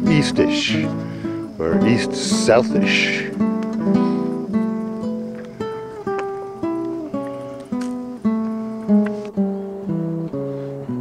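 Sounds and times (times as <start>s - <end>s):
acoustic guitar picking: 0.0s - 11.0s.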